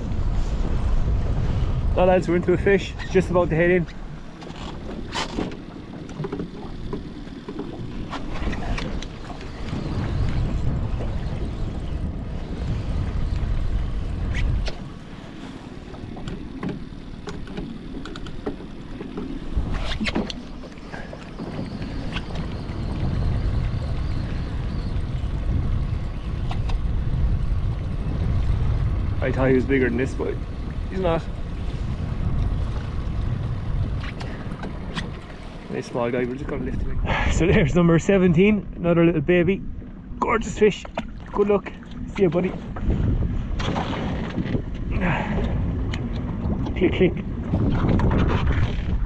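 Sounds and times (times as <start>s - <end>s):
water lapping against boat: 0.0s - 49.0s
wind buffeting microphone: 0.0s - 49.0s
sharp clicks and knocks: 16.2s - 19.4s.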